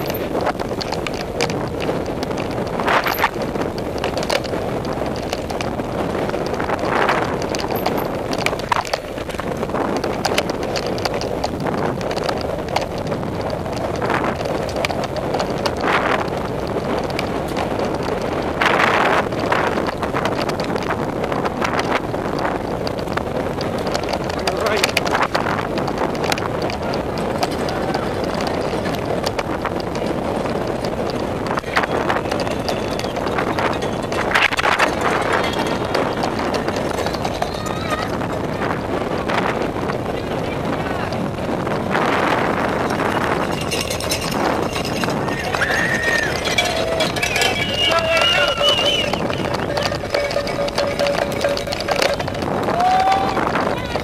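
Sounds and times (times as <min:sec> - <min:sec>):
sharp clicks and knocks: 0:00.0 - 0:21.0, 0:21.6 - 0:37.8, 0:42.8 - 0:52.8
bike frame and chain rattling: 0:00.0 - 0:54.0
tyre noise on dirt: 0:00.0 - 0:54.0
wind on microphone: 0:00.0 - 0:54.0.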